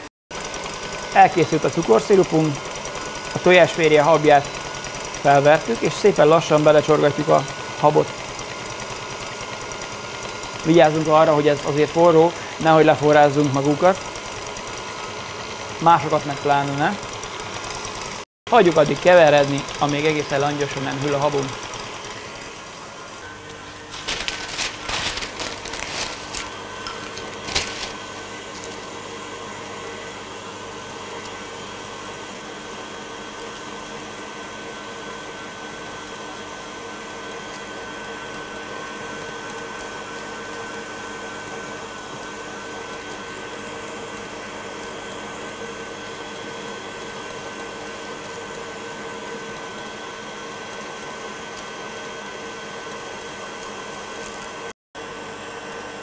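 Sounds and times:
stand mixer motor whine: 0.0s - 56.0s.

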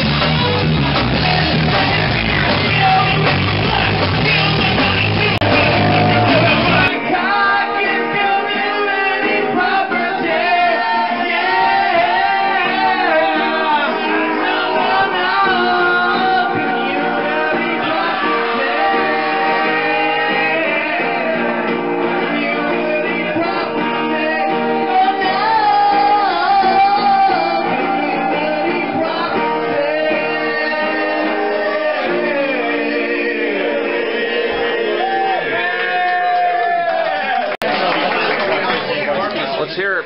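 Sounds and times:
acoustic guitar strumming: 0.3s - 35.5s
voices singing together: 1.0s - 37.4s
people shouting: 5.4s - 6.9s, 30.8s - 37.6s.

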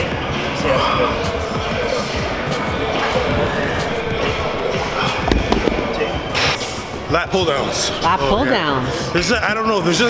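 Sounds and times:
dumbbell thudding on rubber floor: 5.2s - 6.1s.

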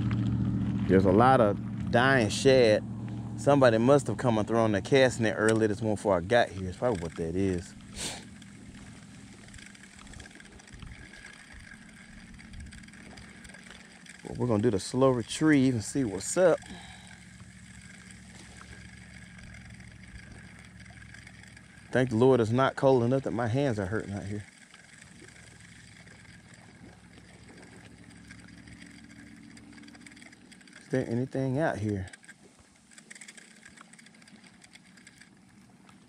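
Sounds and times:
distant engine humming: 0.0s - 36.0s
fishing reel ticking whir: 0.0s - 36.0s
outdoor background noise: 0.0s - 36.0s.

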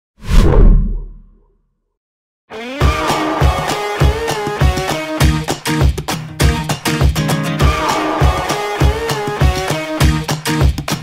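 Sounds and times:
whoosh: 0.2s - 1.4s
deep boom: 0.3s - 1.3s.

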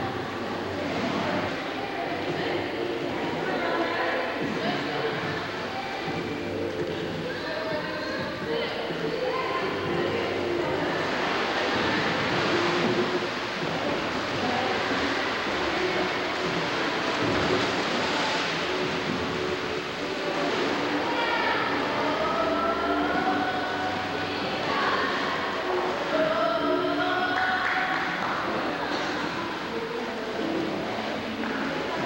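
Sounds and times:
swimmers splashing: 0.1s - 32.0s.

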